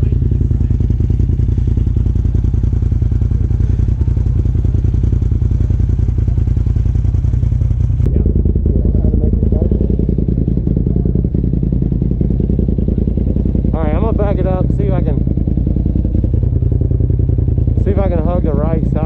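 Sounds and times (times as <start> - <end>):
engine idling: 0.0 - 19.0.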